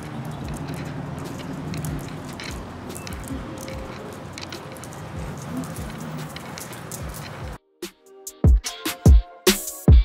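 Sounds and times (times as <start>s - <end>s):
footsteps on concrete: 0.0s - 7.6s.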